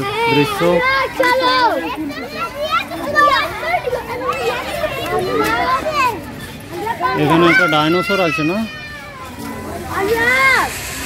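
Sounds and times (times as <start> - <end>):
children shouting and calling: 0.0 - 11.0.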